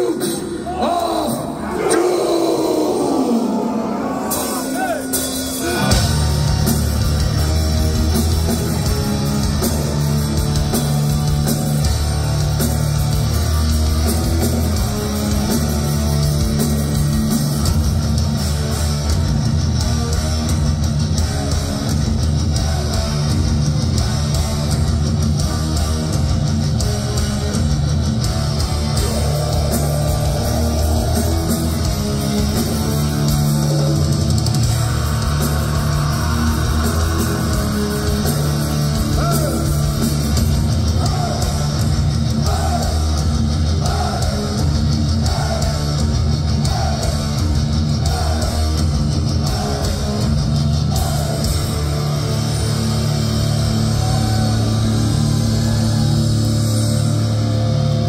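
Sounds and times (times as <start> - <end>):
distorted electric guitars: 0.0 - 58.0
drum kit: 4.0 - 58.0.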